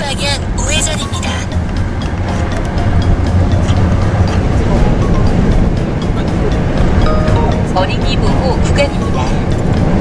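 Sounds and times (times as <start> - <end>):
background music with steady beat: 0.0 - 10.0
car rumble from inside cabin: 0.0 - 10.0.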